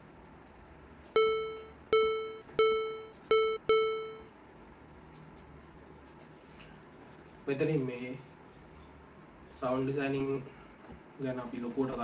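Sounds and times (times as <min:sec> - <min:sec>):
short square-wave synth notes: 0:01.2 - 0:04.2.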